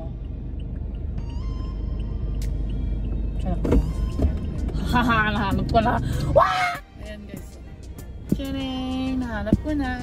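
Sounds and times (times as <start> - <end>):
car cabin rumble: 0.0 - 10.0
faint background music: 0.0 - 10.0.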